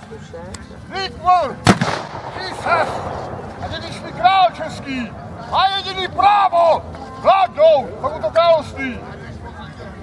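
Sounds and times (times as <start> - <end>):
black-powder gunshot: 1.6 - 3.2.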